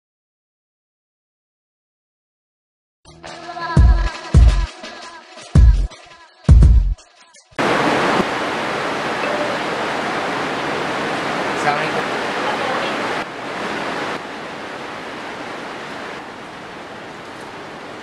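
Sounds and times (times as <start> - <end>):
heavy rain hiss: 7.6 - 18.0.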